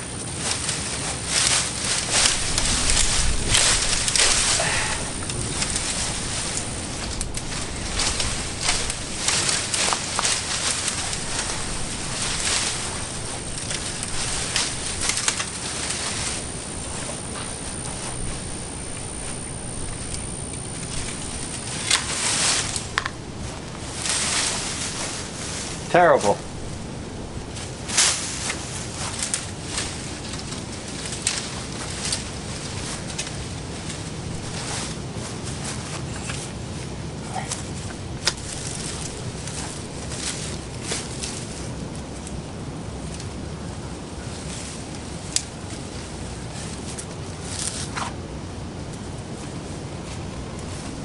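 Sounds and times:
loppers cutting branches: 0.0s - 51.0s
shrub branches rustling and scraping: 0.0s - 51.0s.

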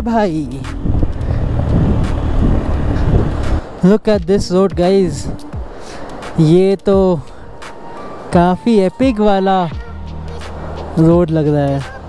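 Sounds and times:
person speaking: 0.0s - 0.8s, 3.0s - 5.6s, 6.3s - 7.4s, 8.3s - 9.8s
wind noise on microphone: 0.0s - 12.0s.

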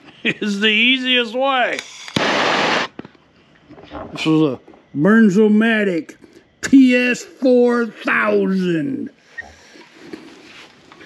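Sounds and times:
hiss of burning gas: 1.7s - 3.0s.

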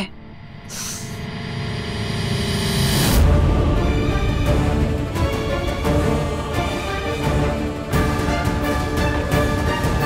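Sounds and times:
tense music: 0.0s - 10.0s
dramatic riser swell: 1.0s - 7.9s
deep hit: 2.9s - 6.6s.

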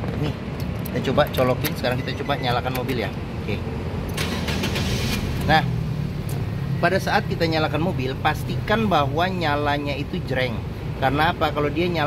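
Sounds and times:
car engine starting and idling: 3.8s - 8.9s.

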